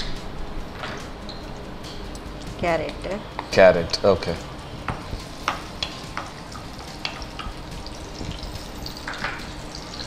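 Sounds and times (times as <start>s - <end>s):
vegetables sizzling in oil: 4.2s - 10.0s.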